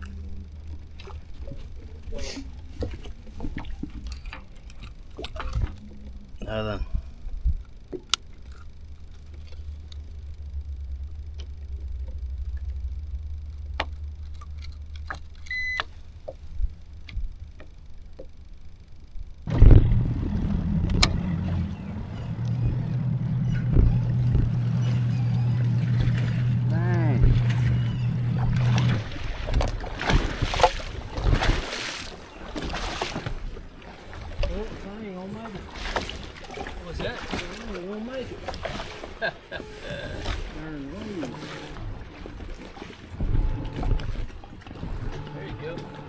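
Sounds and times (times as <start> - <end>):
outboard motor idling: 0.0 - 46.0.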